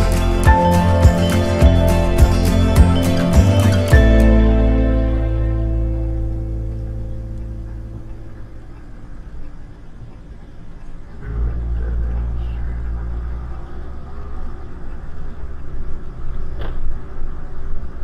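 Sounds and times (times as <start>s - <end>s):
soft guitar music: 0.0s - 8.6s
engine and road rumble: 0.0s - 18.0s.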